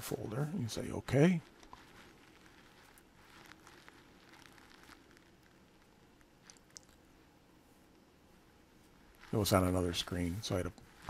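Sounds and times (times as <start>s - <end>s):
small ticks: 1.6s - 7.0s.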